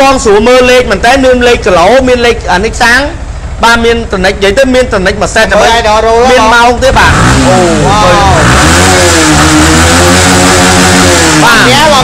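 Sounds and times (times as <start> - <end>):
motorcycle engine revving: 6.3 - 12.0.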